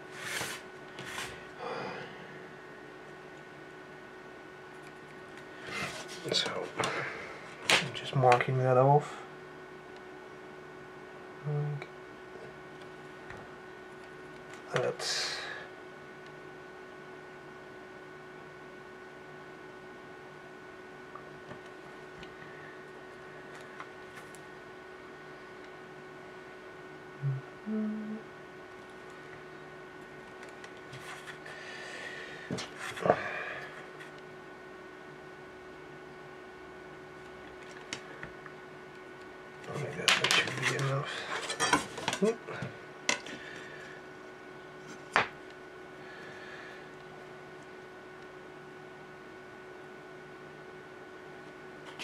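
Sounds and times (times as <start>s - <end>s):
steady electrical hum: 0.0s - 52.0s
workbench handling noises: 40.0s - 42.3s.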